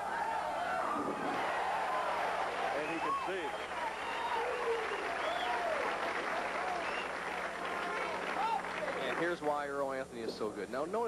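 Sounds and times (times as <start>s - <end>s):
audience applauding: 1.3s - 9.7s.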